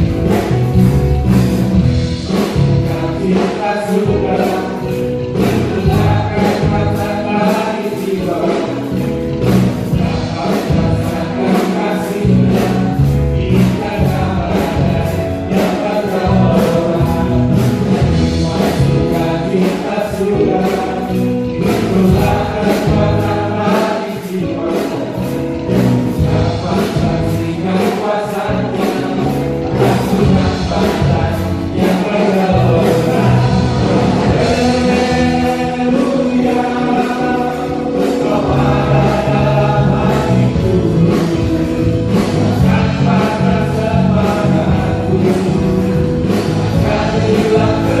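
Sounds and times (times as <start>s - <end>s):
choir singing gospel song: 0.0s - 48.0s
church band playing: 0.0s - 48.0s
steady drum beat: 0.0s - 48.0s.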